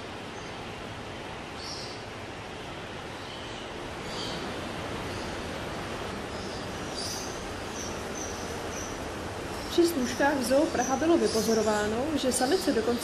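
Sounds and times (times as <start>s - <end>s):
indoor ambient hiss: 0.0s - 13.0s.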